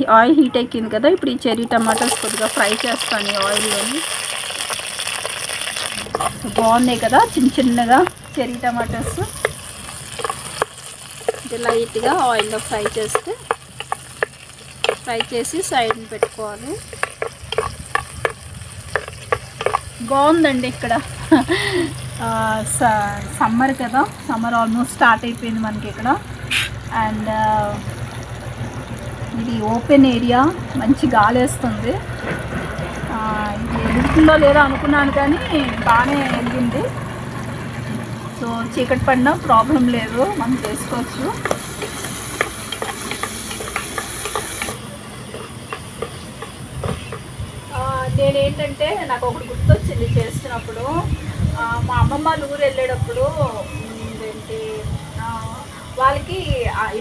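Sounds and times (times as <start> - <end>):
tomatoes sizzling in hot oil: 1.4 - 57.0
metal spatula clicking against pot: 12.4 - 19.9.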